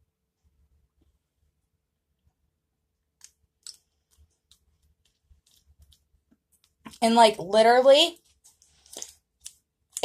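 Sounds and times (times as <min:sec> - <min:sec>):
mouth clicks and lip smacks: 0:03.2 - 0:06.9, 0:08.5 - 0:10.0.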